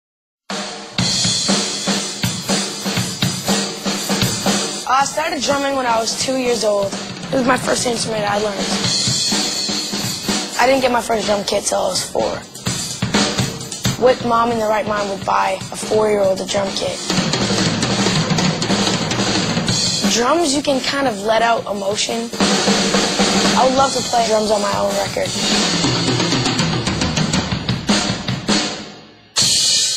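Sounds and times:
drum kit playing: 0.5s - 29.9s.

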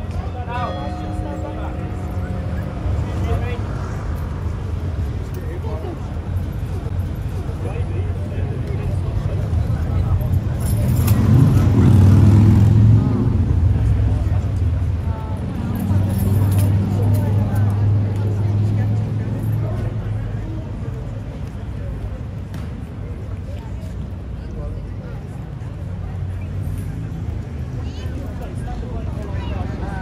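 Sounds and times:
faint voices: 0.0s - 30.0s.

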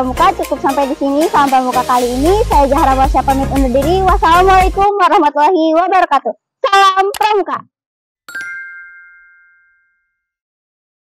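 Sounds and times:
bright bell-like ding: 8.3s - 10.3s.

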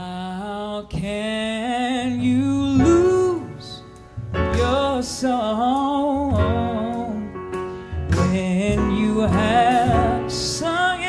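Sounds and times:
live jazz band music: 2.4s - 11.0s.

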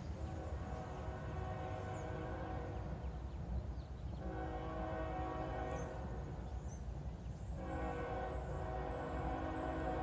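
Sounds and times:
low train rumble: 0.0s - 10.0s
train air horn blasts: 0.9s - 2.8s, 4.2s - 6.1s, 7.6s - 10.0s.

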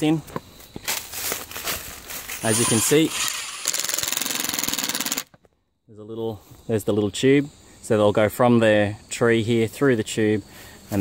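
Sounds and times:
impact driver rattling: 2.4s - 5.3s.

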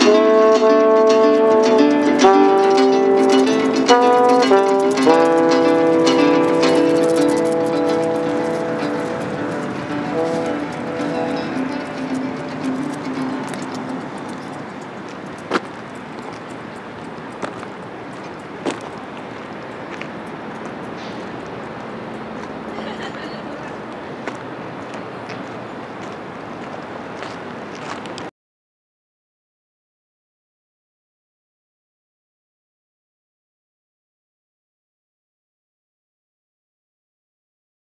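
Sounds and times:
acoustic band chord with guitar: 0.0s - 14.8s
outdoor ambience: 0.0s - 28.3s.

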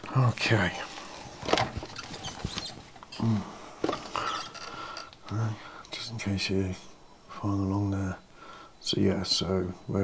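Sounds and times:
clicks and rustling on workbench: 1.4s - 3.1s.

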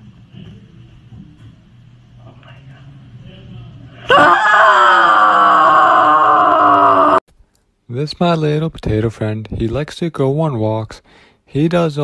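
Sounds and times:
person crying out: 4.1s - 7.2s.

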